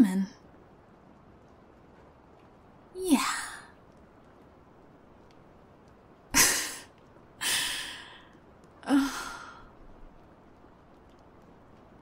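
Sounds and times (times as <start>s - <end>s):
woman sighing: 7.4s - 9.7s.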